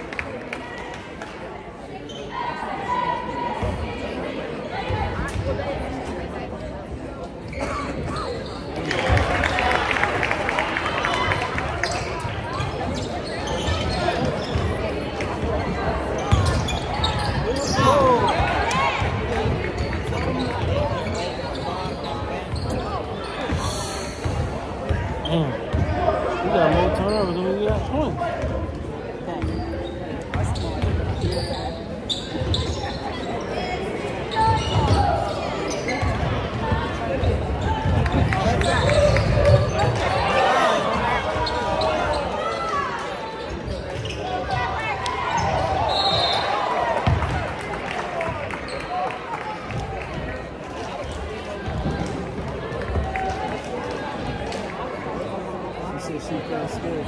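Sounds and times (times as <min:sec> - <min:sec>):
spectators chatter: 0:00.0 - 0:57.0.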